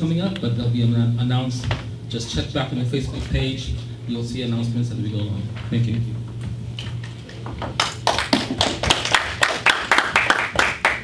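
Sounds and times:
people clapping: 7.7s - 11.0s.

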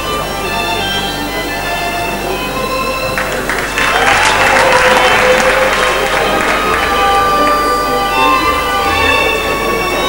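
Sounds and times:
violin music: 0.0s - 10.0s
audience applause: 3.0s - 10.0s.

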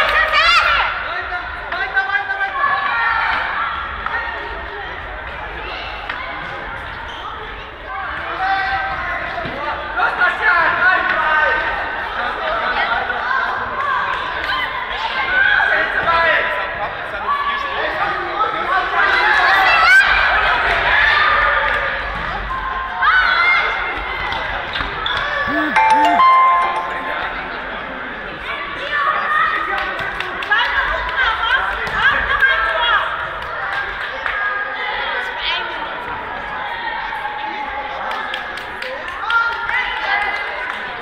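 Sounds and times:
brief high tone: 25.5s - 27.9s.

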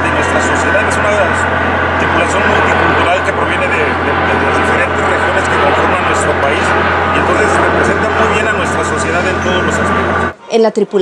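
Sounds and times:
man talking: 0.0s - 10.1s
loud steady background noise: 0.0s - 11.0s.

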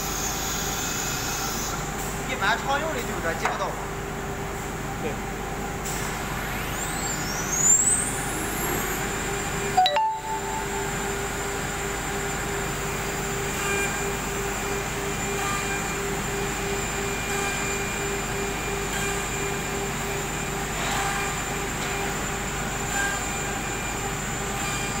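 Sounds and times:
cnc router spindle whine: 0.0s - 2.0s, 5.2s - 9.8s, 10.5s - 25.0s
machine noise: 5.8s - 25.0s.

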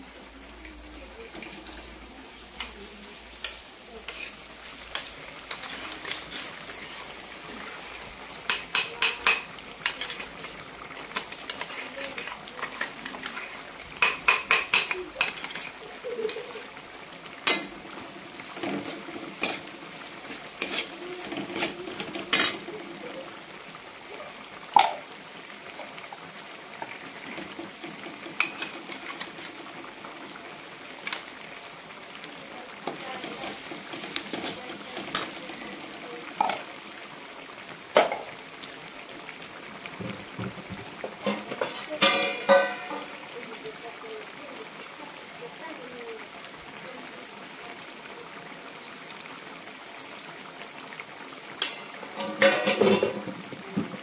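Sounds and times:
curry bubbling in a pan: 0.0s - 54.0s
metal spatula clinking on pan: 41.2s - 43.1s.

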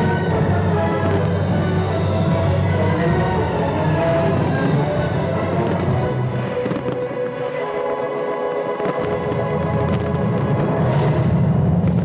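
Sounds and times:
fireworks popping and crackling: 0.0s - 2.4s, 4.0s - 12.0s
orchestral music: 0.0s - 12.0s.

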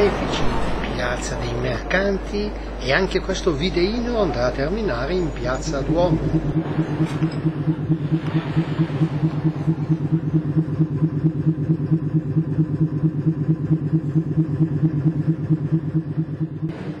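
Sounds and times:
motor running with throb: 0.0s - 17.0s.

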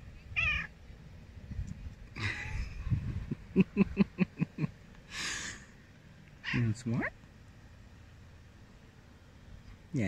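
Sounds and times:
cat chirping call: 0.3s - 0.8s.

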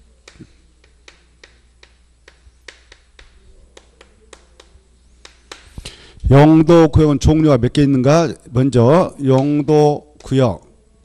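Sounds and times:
faint steady hum: 0.0s - 11.0s
chalk tapping on chalkboard: 0.2s - 6.0s.

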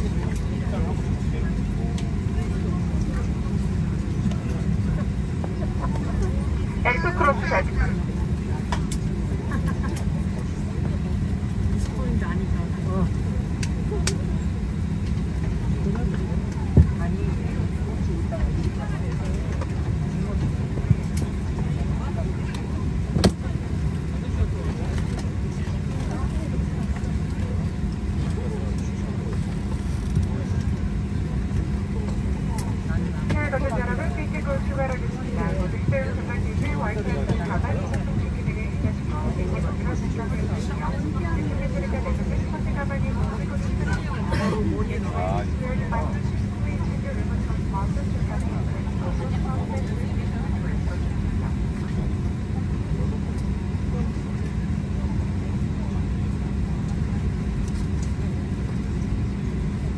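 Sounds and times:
cabin ventilation drone: 0.0s - 59.9s
faint voices: 0.0s - 59.9s.

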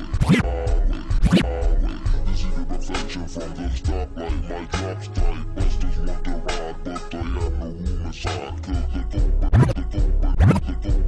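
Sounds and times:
turntable scratches: 0.0s - 1.7s, 9.4s - 10.8s
slowed hip hop beat: 0.0s - 11.0s.

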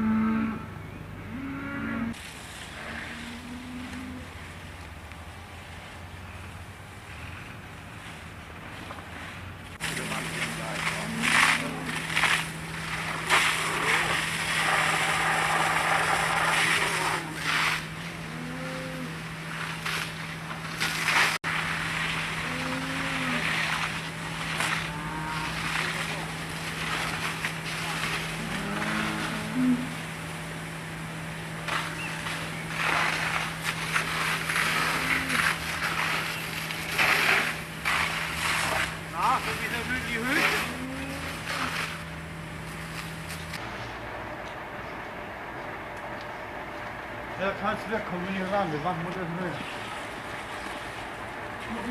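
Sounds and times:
constant low hum: 0.0s - 51.9s
water jet spraying: 9.8s - 18.2s, 19.4s - 30.1s, 31.6s - 42.1s, 47.8s - 51.9s.

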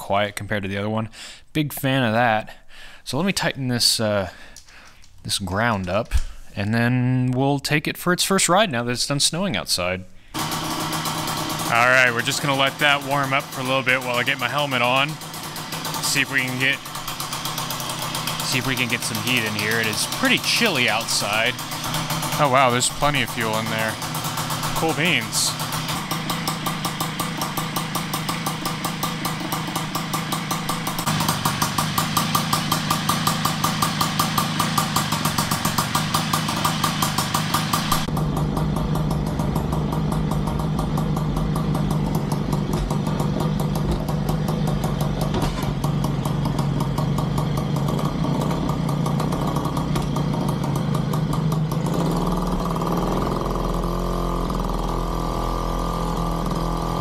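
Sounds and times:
moped engine idling: 10.3s - 57.0s.

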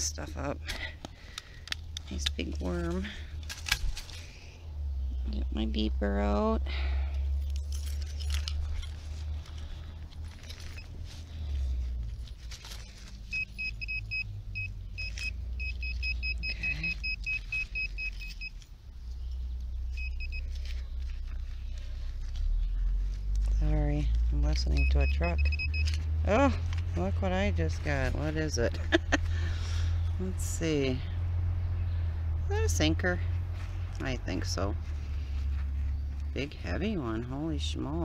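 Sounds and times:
scratching of dirt and twigs: 0.0s - 6.4s, 7.0s - 31.9s, 32.6s - 38.0s
steady low rumble: 0.0s - 38.0s
metal detector beeping: 10.5s - 11.0s, 13.2s - 18.6s, 19.9s - 20.7s, 24.6s - 26.1s.

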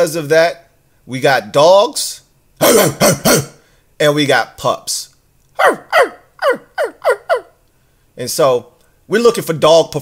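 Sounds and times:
small animal high cries: 5.6s - 7.6s.

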